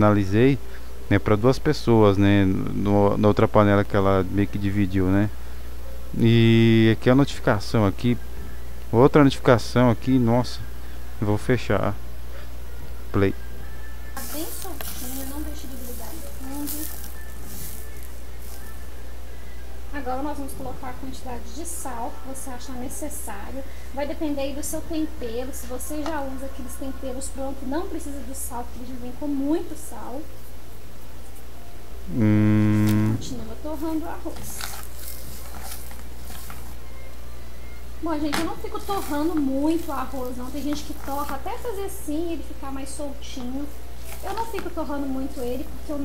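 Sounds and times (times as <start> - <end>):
low steady hum: 0.0 - 46.0
rice sizzling in oil: 14.2 - 18.8.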